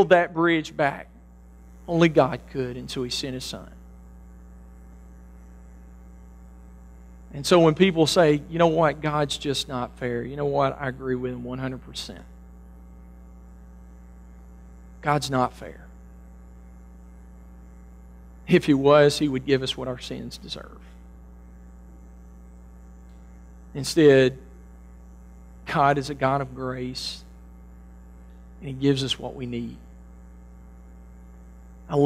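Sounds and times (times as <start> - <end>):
man's voice: 0.0 - 1.1, 1.9 - 3.7, 7.3 - 12.2
low electrical hum: 0.0 - 32.0.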